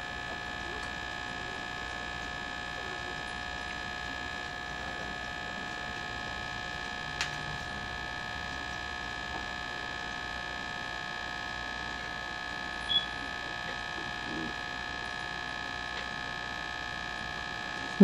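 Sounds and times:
electrical hum with high whine: 0:00.0 - 0:18.0.

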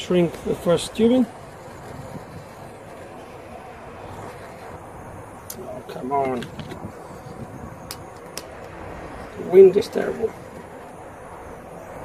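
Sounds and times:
wind rushing on microphone: 0:00.0 - 0:12.0.

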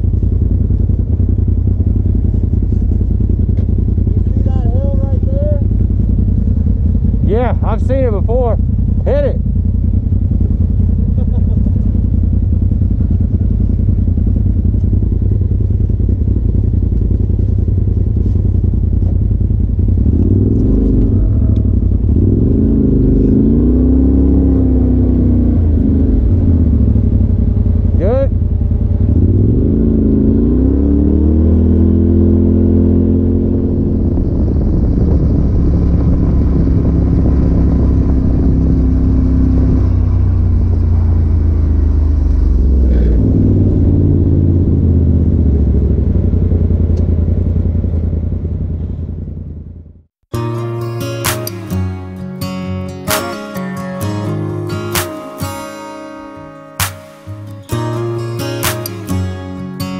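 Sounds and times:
off-road vehicle engine revving: 0:02.0 - 0:14.8, 0:15.9 - 0:49.7, 0:50.3 - 0:59.9.

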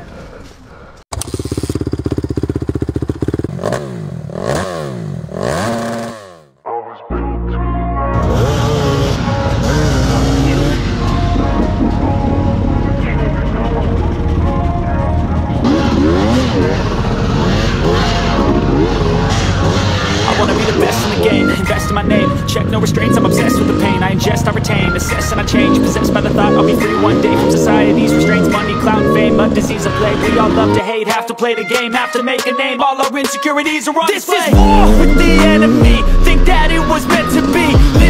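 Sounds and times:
motorcycle engine revving: 0:01.1 - 0:06.5, 0:08.2 - 0:30.8, 0:34.5 - 0:38.0.

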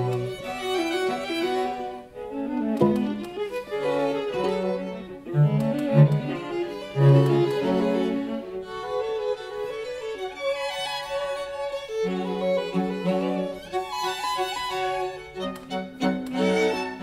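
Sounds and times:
string ensemble chamber music: 0:00.0 - 0:17.0.

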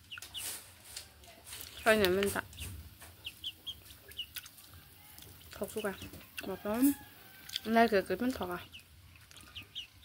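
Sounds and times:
chick high peeps: 0:00.0 - 0:00.6, 0:01.7 - 0:10.0
chickens clucking: 0:00.0 - 0:10.0.

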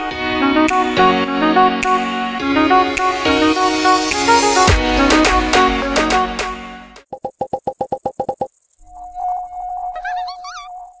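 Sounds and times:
synthesized jingle: 0:08.9 - 0:11.0.

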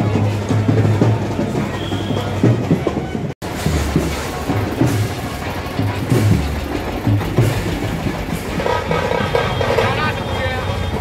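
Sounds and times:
crowd voices: 0:00.0 - 0:11.0
marching brass band: 0:00.0 - 0:11.0
tractor engine rumble: 0:00.0 - 0:11.0.

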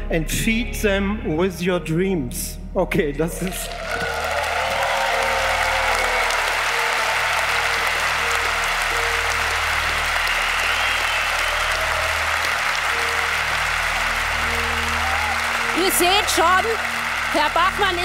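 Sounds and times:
music playing: 0:00.0 - 0:18.0
audience applauding: 0:03.4 - 0:18.0.

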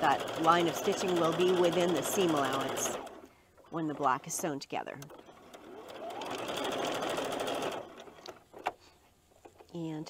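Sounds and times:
sewing machine stitching: 0:00.0 - 0:03.2, 0:05.0 - 0:08.8.

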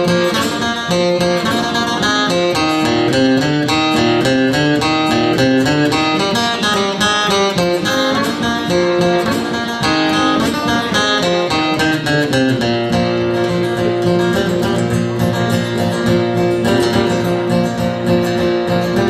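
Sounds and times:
acoustic guitar picking melody: 0:00.0 - 0:19.0.

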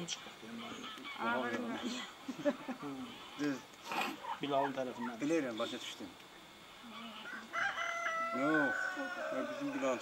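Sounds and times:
rooster crowing: 0:06.9 - 0:10.0.

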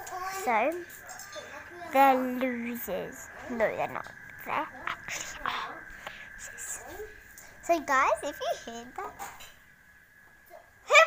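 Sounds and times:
steady high-pitched tone: 0:01.9 - 0:09.2
person whispering: 0:04.7 - 0:06.9.

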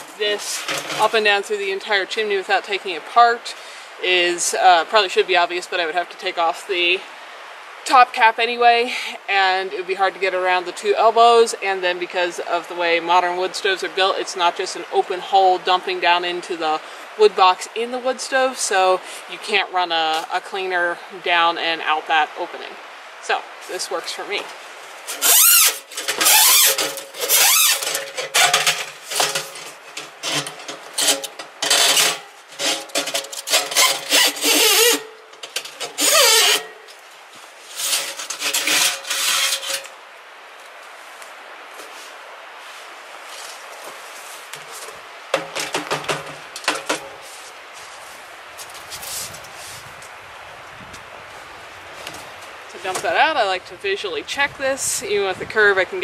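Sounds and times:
chimney brush scraping inside pipe: 0:00.0 - 0:01.5, 0:24.4 - 0:40.0.

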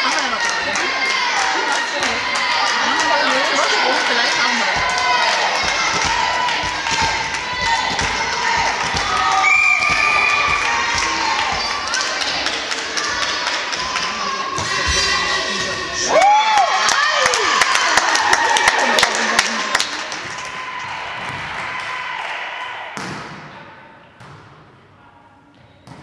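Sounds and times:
people shouting and cheering: 0:00.0 - 0:23.3
volleyball hits and thuds: 0:04.7 - 0:11.7, 0:21.2 - 0:22.0, 0:23.0 - 0:23.6, 0:24.2 - 0:24.8, 0:25.8 - 0:26.0.

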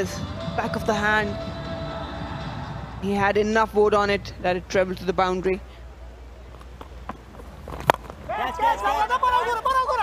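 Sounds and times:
low stadium hum: 0:00.0 - 0:10.0
person shouting: 0:08.3 - 0:10.0.

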